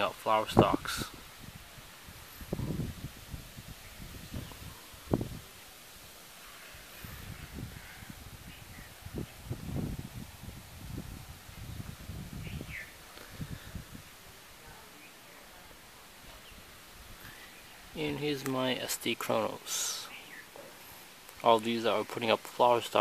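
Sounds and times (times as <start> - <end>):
faint bird chirp: 6.3 - 9.6, 11.6 - 13.8, 14.6 - 18.4, 19.8 - 21.2.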